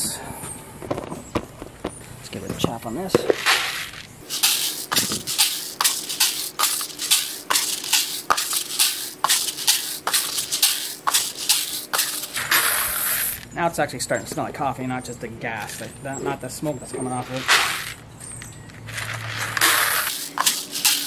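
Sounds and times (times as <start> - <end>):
coffee beans rattling poured: 3.4 - 13.4, 18.9 - 21.0.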